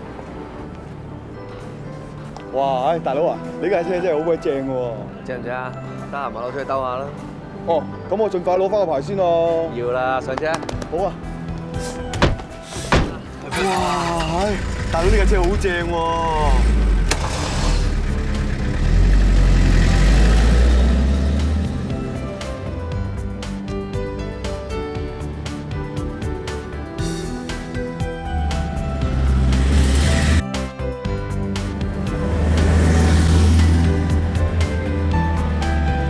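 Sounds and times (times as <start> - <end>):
background music: 0.0 - 36.0
car engine running: 16.4 - 22.1
car driving past: 31.8 - 36.0.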